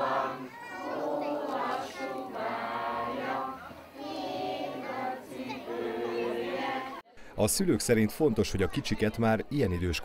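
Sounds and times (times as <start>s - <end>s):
children and man singing: 0.0s - 7.0s.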